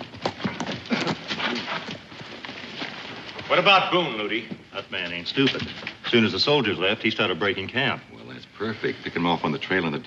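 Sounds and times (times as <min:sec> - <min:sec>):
horse hooves clopping: 0:00.0 - 0:06.3.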